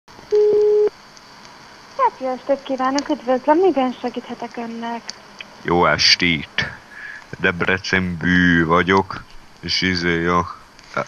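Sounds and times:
faint line hiss: 0.2 - 11.0
telephone line tone: 0.3 - 0.9
light line clicks: 2.8 - 3.2.

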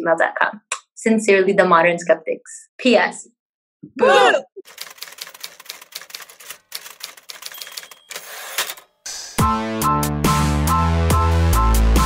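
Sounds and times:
typewriter keys clacking: 4.7 - 8.9
typewriter rasping: 4.7 - 9.0.

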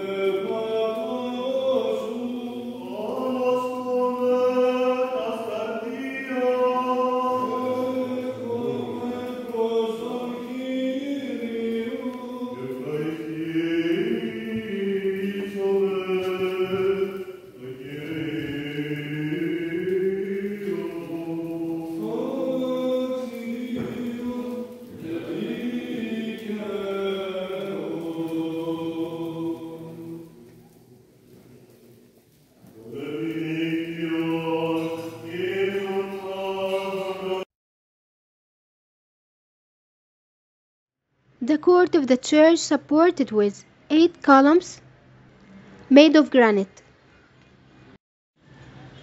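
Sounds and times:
voices chanting long gliding notes: 0.0 - 37.5.

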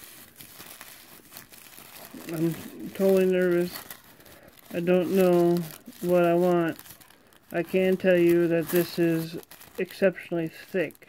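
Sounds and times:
tissue paper crinkling: 0.0 - 11.0.

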